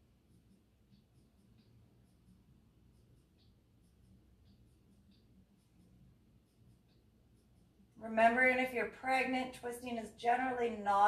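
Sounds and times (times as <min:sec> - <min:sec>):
faint soft ticks: 0:00.4 - 0:07.9.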